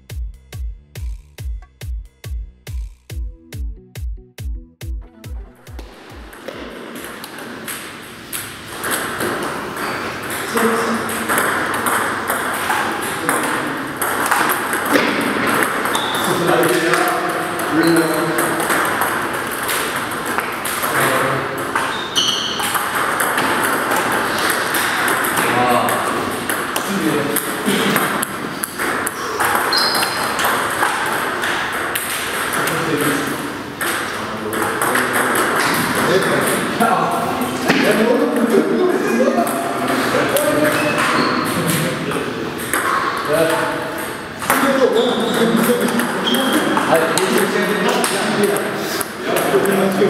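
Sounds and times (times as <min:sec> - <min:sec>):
ball bouncing on table: 0:05.6 - 0:38.7, 0:39.4 - 0:48.7
men talking: 0:10.4 - 0:11.8, 0:12.8 - 0:14.0, 0:14.8 - 0:19.0, 0:20.8 - 0:21.8, 0:25.3 - 0:28.5, 0:32.5 - 0:42.6, 0:43.2 - 0:50.0.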